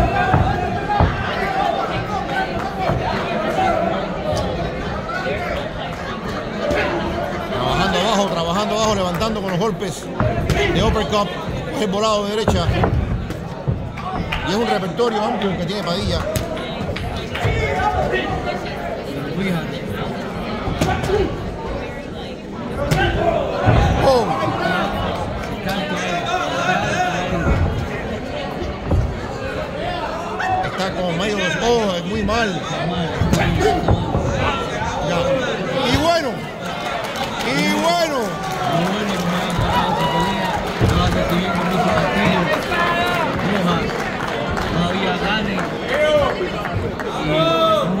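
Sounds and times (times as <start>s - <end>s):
punches landing: 0.0s - 3.3s, 22.8s - 25.2s
arena crowd hubbub: 0.0s - 48.0s.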